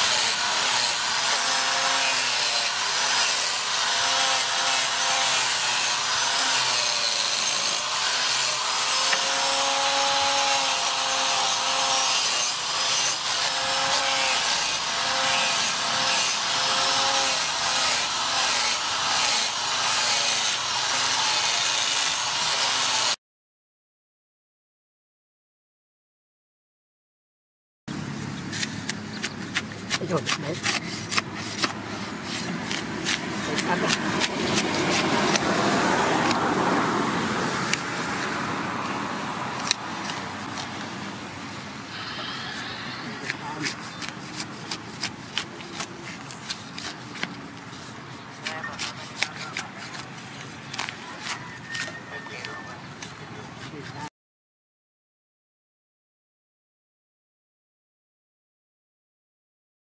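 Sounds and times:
angle grinder grinding steel: 0.0s - 23.2s, 28.6s - 36.5s, 39.6s - 52.6s
blade chopping into turf: 28.5s - 35.6s.

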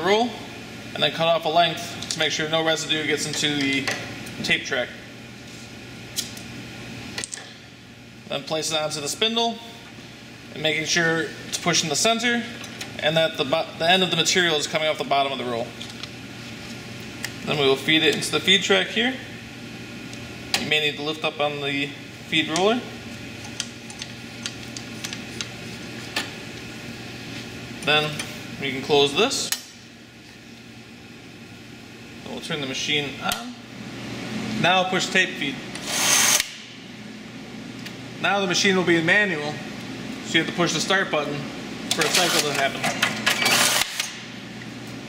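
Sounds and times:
steady low hum: 0.0s - 45.0s
banding machine whirring: 35.8s - 36.6s, 42.0s - 44.2s.

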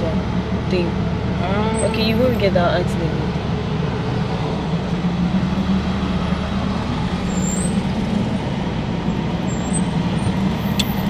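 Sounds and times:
car engine hum: 0.0s - 11.0s
road noise: 0.0s - 11.0s.

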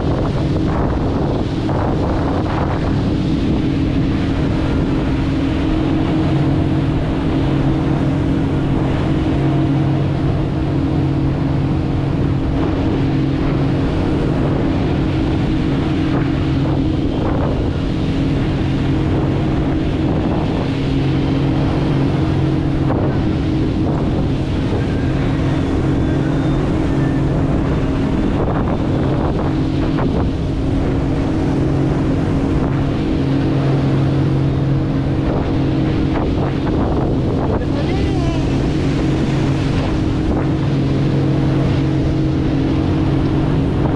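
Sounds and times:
motorboat engine drone: 0.0s - 43.9s
water rushing past hull: 0.0s - 43.9s
wind buffeting microphone: 0.0s - 43.9s.

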